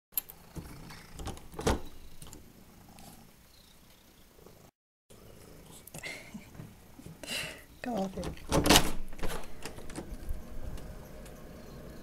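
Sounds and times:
cat purring: 0.3 - 6.5.

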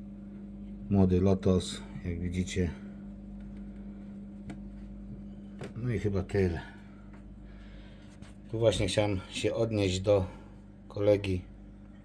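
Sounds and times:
aquarium equipment humming: 0.0 - 12.0.

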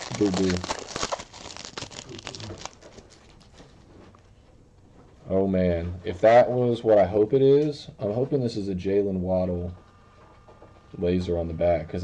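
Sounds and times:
cards rustling: 0.0 - 3.8
foil wrapper crinkling: 0.0 - 3.8.

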